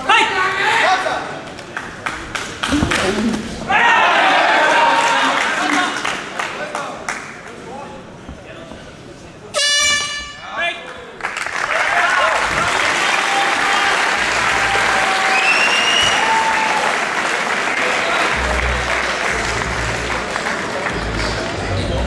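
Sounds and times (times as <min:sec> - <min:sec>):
crowd applauding and shouting: 0:01.4 - 0:07.6, 0:10.8 - 0:22.0
air horn blasts: 0:09.5 - 0:10.6.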